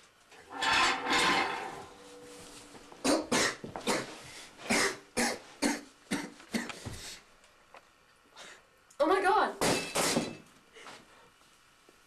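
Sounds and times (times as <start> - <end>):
boy coughing and choking: 3.0 - 6.8.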